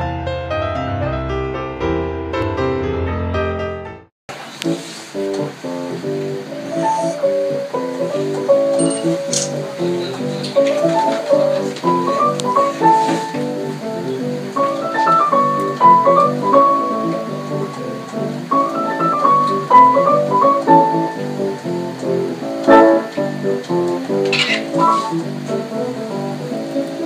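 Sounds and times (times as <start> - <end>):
jazz piano four hands: 0.0 - 27.0.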